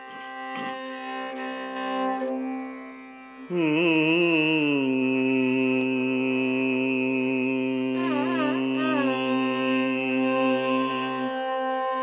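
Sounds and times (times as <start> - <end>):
man singing vocal alapana: 3.5 - 12.0.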